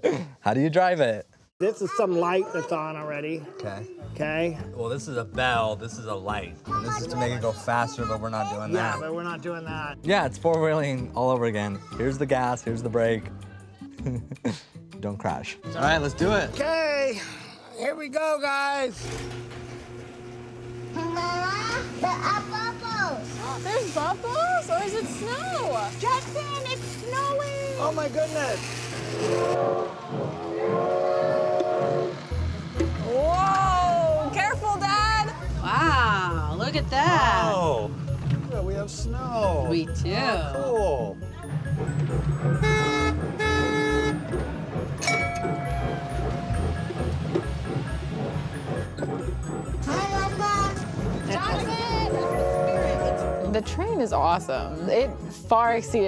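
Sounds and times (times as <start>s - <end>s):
motor droning: 19.0s - 39.2s
novelty train horn blasts: 23.4s - 33.0s, 42.4s - 47.4s, 51.6s - 54.0s
background music with steady beat: 31.8s - 56.0s.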